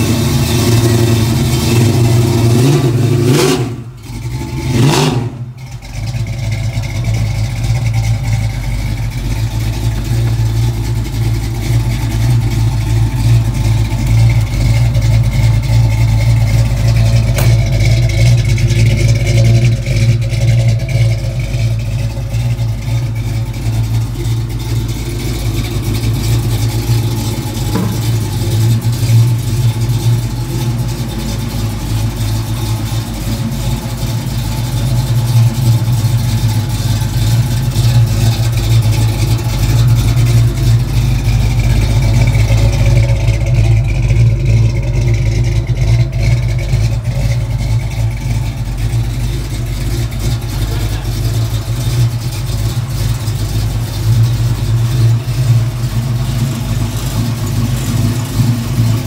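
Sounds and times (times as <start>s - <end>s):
car engine idling: 0.0s - 59.0s.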